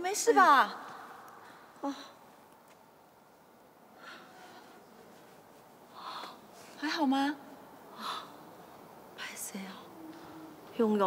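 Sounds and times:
woman whispering: 0:09.2 - 0:11.0.

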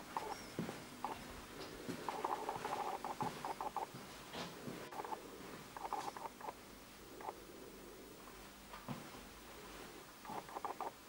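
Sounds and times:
footsteps on tiled floor: 0:00.0 - 0:06.3, 0:08.3 - 0:10.5.

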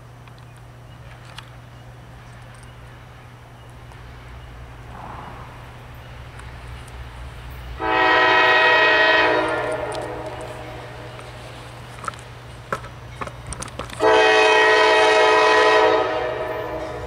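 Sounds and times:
diesel engines rumbling: 0:00.0 - 0:17.0
locomotive air horn blast: 0:07.8 - 0:11.0, 0:14.0 - 0:17.0.

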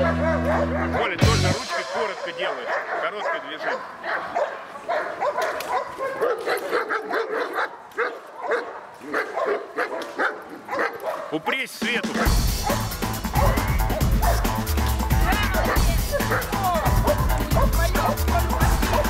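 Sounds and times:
background music: 0:00.0 - 0:02.9, 0:11.6 - 0:19.0
dog barking and yipping: 0:00.0 - 0:11.4, 0:12.1 - 0:19.0.

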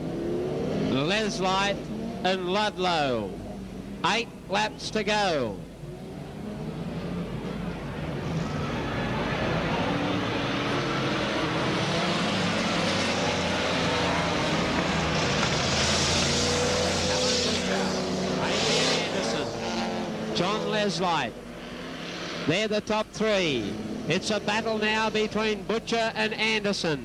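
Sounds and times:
racing car engines running hard: 0:00.0 - 0:04.1, 0:05.6 - 0:26.6.

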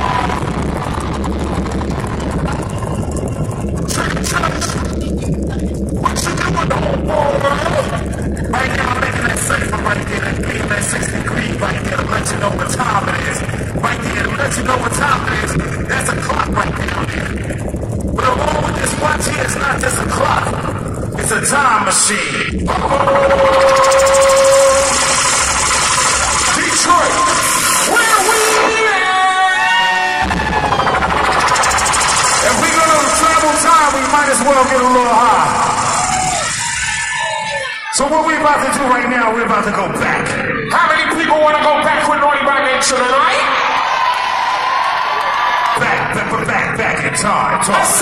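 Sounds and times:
sharp hits: 0:00.0 - 0:29.0, 0:30.1 - 0:37.5
rapid buzzing pulse: 0:00.0 - 0:38.8
bass-heavy hip-hop beat: 0:00.0 - 0:42.2
held tone: 0:22.5 - 0:28.8.

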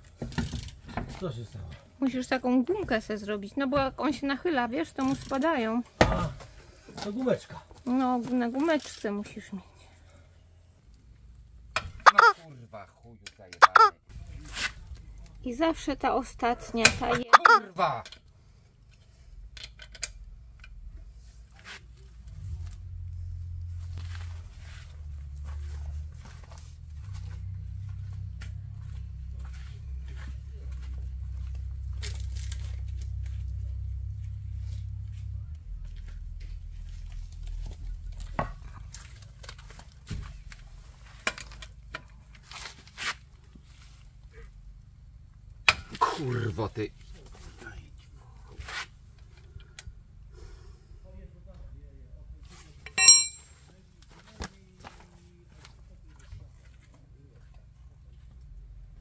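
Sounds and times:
low rumble: 0:22.1 - 0:41.0
hand tools clinking: 0:52.8 - 0:53.7.

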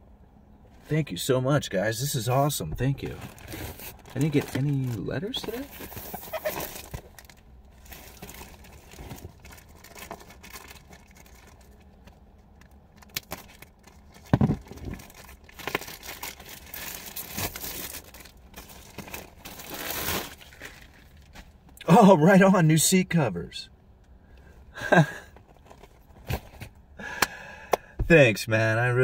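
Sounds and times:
plastic bag tearing and rustling: 0:03.1 - 0:11.6, 0:13.0 - 0:21.4.

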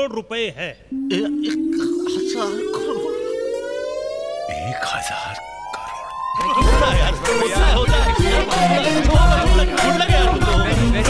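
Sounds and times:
rising tone riser effect: 0:00.9 - 0:08.5.

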